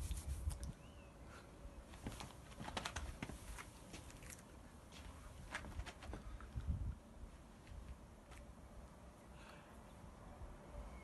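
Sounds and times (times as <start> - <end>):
low wind rumble: 5.2 - 8.9.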